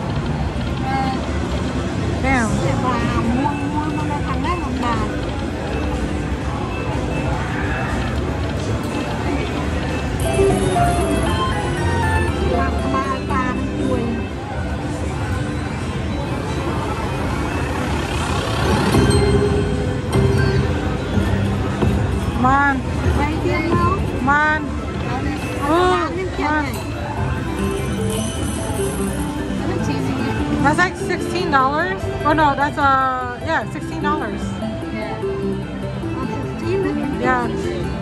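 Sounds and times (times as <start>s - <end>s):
chatter: 0.0s - 38.0s
crowd noise: 0.0s - 38.0s
rumble of slot machines: 0.0s - 38.0s.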